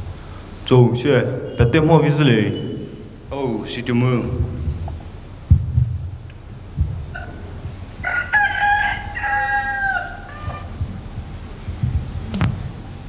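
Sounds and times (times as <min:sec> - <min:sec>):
dull thumps: 0:03.3 - 0:09.2, 0:10.5 - 0:13.0
rooster crowing: 0:07.0 - 0:11.1.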